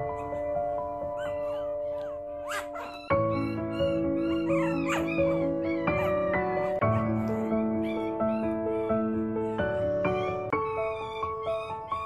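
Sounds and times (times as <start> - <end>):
music of held chords: 0.0 - 12.0
puppies whining and yipping: 0.0 - 12.0.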